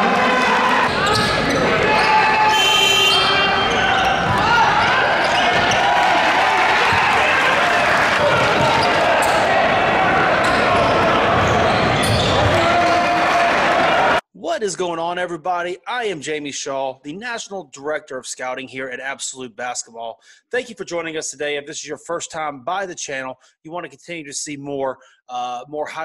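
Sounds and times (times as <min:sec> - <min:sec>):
crowd voices and shouts: 0:00.0 - 0:14.2.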